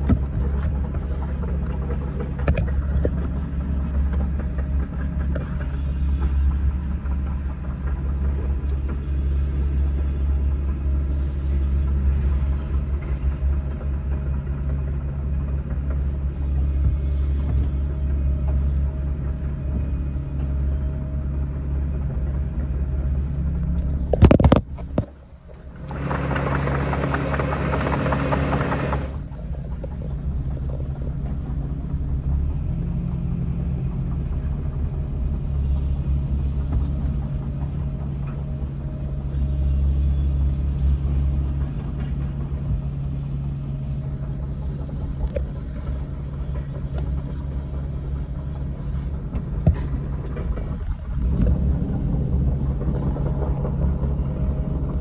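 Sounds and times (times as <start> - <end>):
excavator diesel rumble: 0.0 - 55.0.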